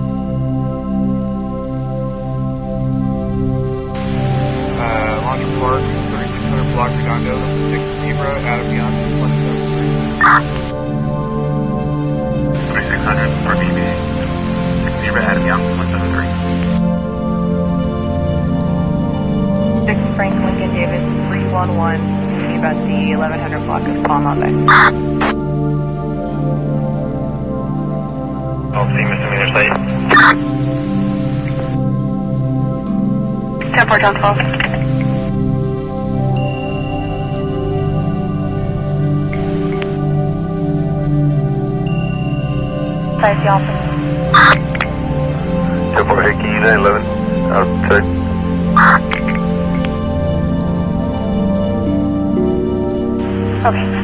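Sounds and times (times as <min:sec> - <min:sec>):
background music with held chords: 0:00.0 - 0:54.0
garbled radio voices: 0:04.0 - 0:10.7, 0:12.6 - 0:16.8, 0:19.9 - 0:25.4, 0:28.7 - 0:31.8, 0:33.6 - 0:35.3, 0:43.2 - 0:50.0, 0:53.4 - 0:54.0
radio static bursts: 0:04.0 - 0:10.7, 0:12.6 - 0:14.2, 0:14.8 - 0:16.8, 0:19.9 - 0:25.4, 0:28.8 - 0:31.8, 0:33.6 - 0:35.3, 0:43.2 - 0:50.0, 0:53.5 - 0:54.0
broken voice fragments: 0:28.8 - 0:30.4, 0:33.6 - 0:35.2, 0:48.7 - 0:49.5, 0:53.6 - 0:54.0.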